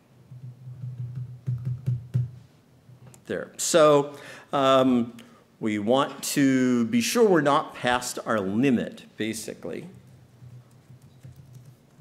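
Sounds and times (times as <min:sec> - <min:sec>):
keyboard typing: 0:10.4 - 0:12.0.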